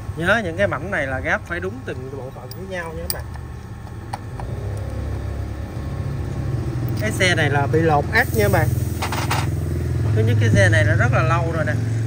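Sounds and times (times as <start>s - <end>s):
engine running low rumble: 0.0s - 12.0s.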